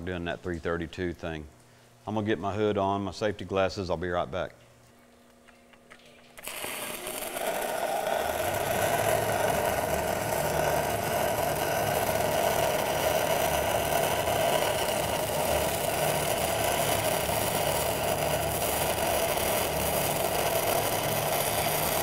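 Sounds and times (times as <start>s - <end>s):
welding arc crackling: 6.2s - 22.0s.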